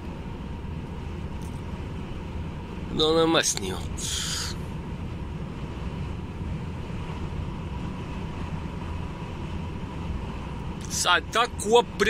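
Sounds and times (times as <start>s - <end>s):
truck diesel engine drone: 0.0s - 12.0s
tyres on road: 0.0s - 12.0s.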